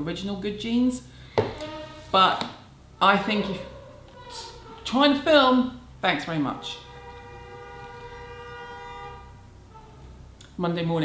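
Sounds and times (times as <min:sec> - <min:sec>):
vehicle horn long note: 0:01.4 - 0:02.2, 0:06.0 - 0:10.2.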